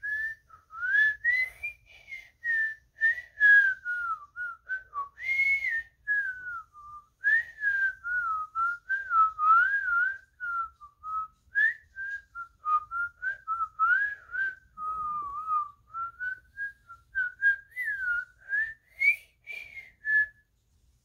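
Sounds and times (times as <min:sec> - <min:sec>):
boy whistling a melody: 0:00.0 - 0:20.6.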